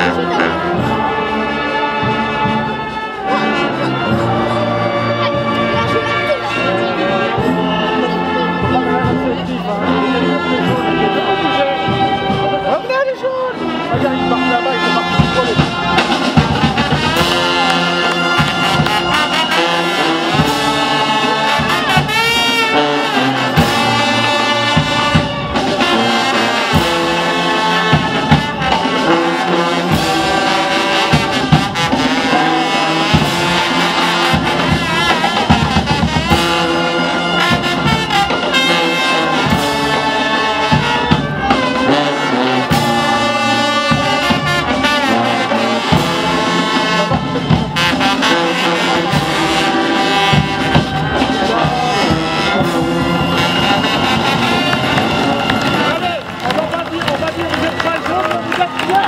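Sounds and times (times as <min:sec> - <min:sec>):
trumpets and trombones: 0:00.0 - 0:59.0
drum and cymbal beats: 0:13.5 - 0:56.4.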